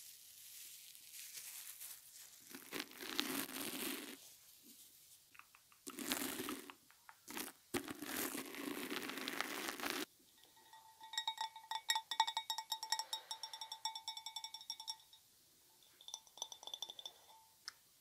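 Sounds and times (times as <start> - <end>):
pom-pom rubbing on microphone: 0.0 - 6.7, 7.3 - 10.1
fingernails tapping glass bowl: 10.4 - 15.2, 15.8 - 17.5.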